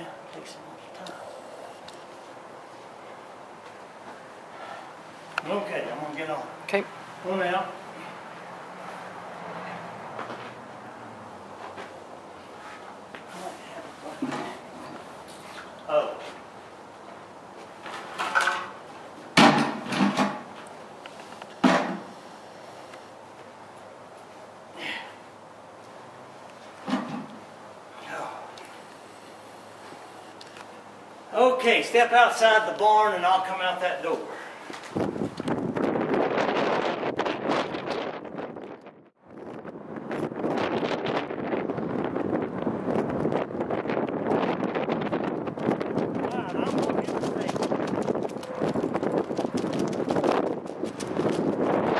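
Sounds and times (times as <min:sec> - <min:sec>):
wind buffeting microphone: 0:34.8 - 0:51.9.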